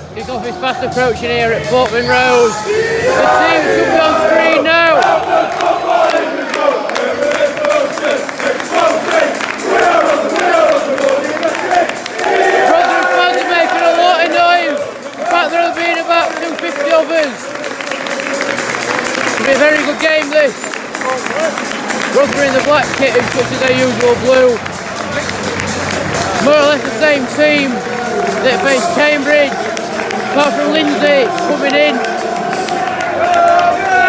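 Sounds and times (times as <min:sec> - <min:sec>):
crowd cheering: 0:00.0 - 0:34.0
stadium crowd singing and chanting: 0:00.0 - 0:34.0.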